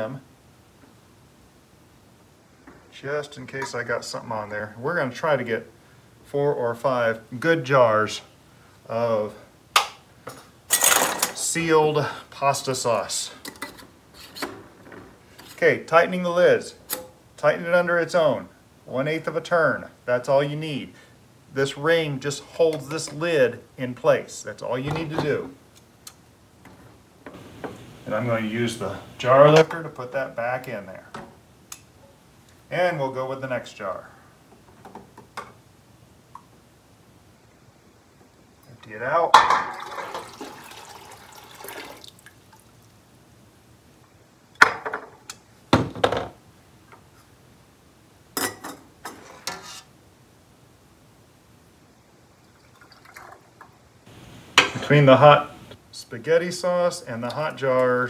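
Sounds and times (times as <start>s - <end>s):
water poured into metal pot: 39.5s - 42.6s, 52.4s - 53.7s.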